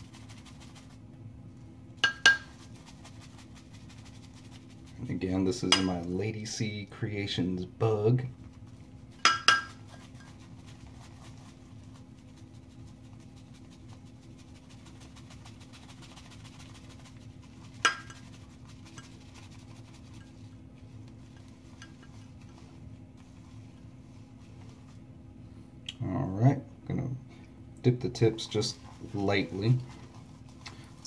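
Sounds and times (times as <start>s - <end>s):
steady low hum: 0.0s - 31.0s
ceramic mug clinking: 9.3s - 9.8s.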